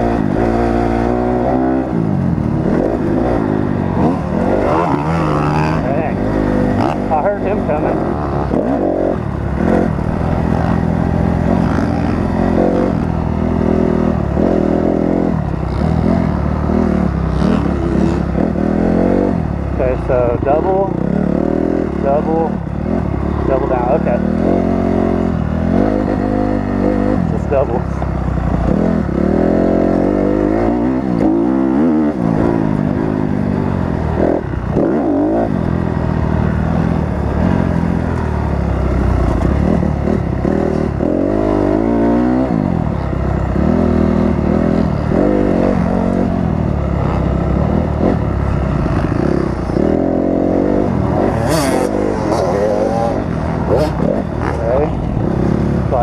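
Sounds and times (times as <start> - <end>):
motocross bike engine revving: 0.0 - 56.0.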